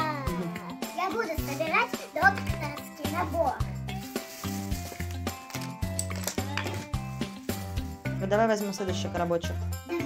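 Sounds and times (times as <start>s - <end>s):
plastic bag crinkling: 3.9s - 7.7s.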